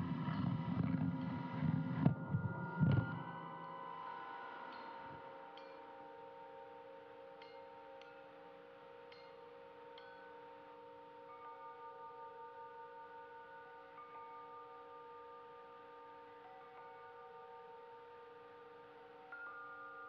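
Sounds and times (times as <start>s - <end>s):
chime-like ringing tones: 1.5s - 8.4s.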